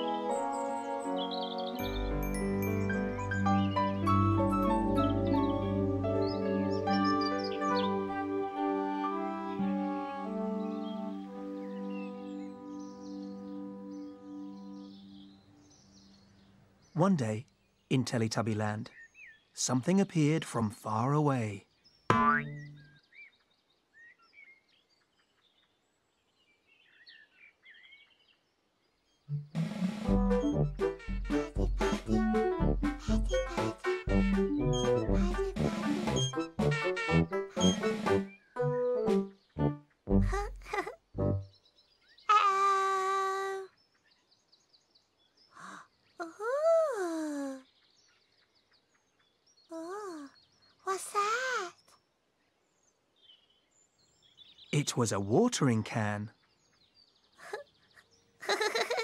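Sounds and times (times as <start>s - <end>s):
birds chirping faintly: 0.0s - 36.5s, 37.1s - 59.0s
cartoon boing: 22.1s - 22.8s
bouncy children's music: 29.3s - 41.4s
high childlike voice cooing: 33.0s - 34.3s, 35.1s - 35.8s, 40.2s - 41.0s
faint bird chirps: 40.3s - 59.0s.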